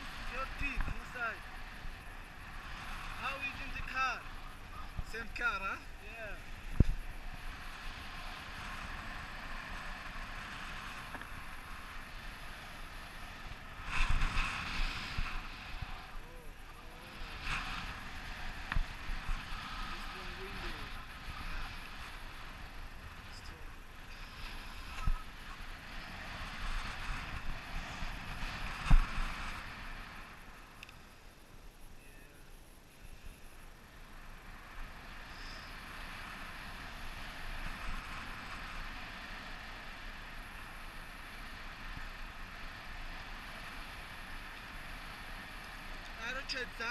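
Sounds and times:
wind rushing over microphone: 0.0 - 30.9, 31.5 - 46.9.

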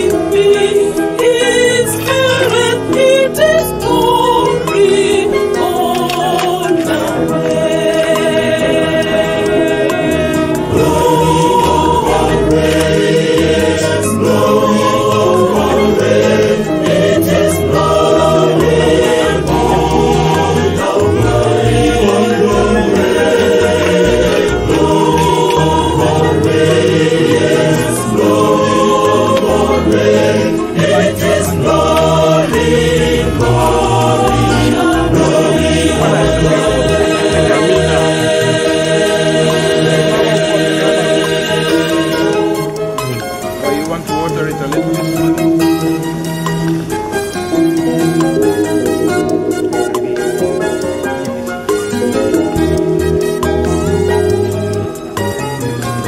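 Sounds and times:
choir singing gospel: 0.0 - 56.0.

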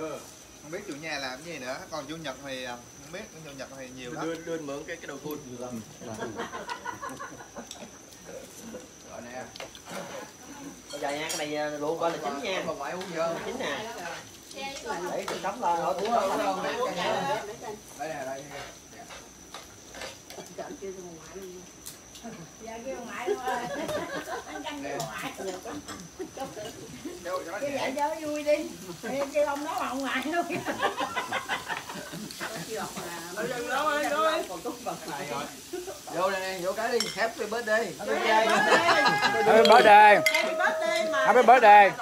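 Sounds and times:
indistinct conversation: 0.0 - 42.0
people chattering: 0.0 - 42.0
tableware clicking: 39.6 - 41.1.

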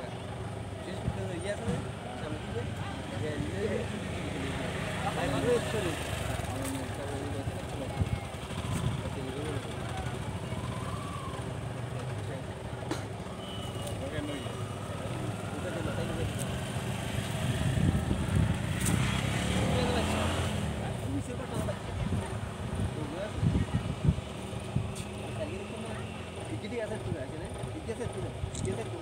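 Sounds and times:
people talking quietly: 0.0 - 29.0.

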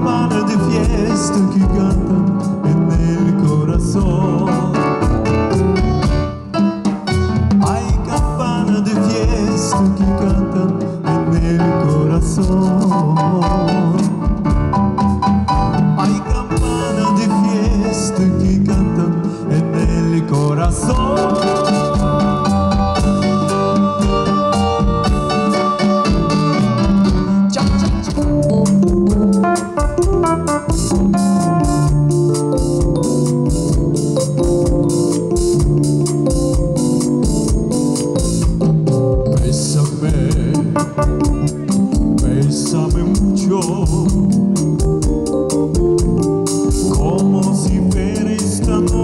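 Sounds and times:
bass guitar: 0.0 - 49.0
drum kit steady beat: 0.0 - 49.0
keyboard: 0.0 - 49.0.

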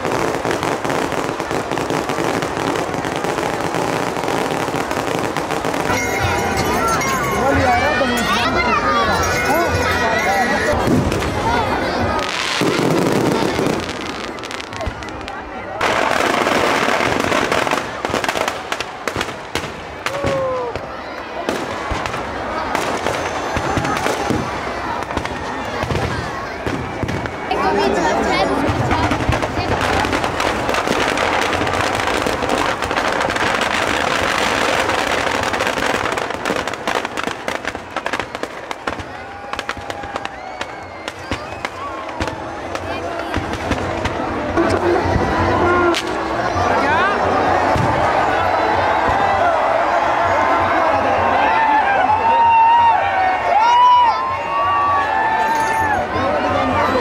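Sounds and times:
crowd voices: 0.0 - 57.0
fireworks crackling and banging: 0.0 - 57.0.

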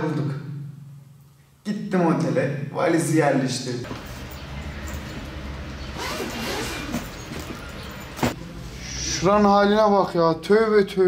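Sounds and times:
zipper rasping open: 5.9 - 7.9.

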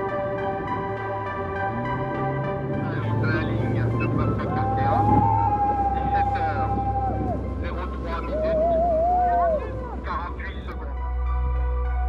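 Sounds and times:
steady low rumble: 0.0 - 12.0
people shouting: 4.3 - 7.4, 8.2 - 10.0.

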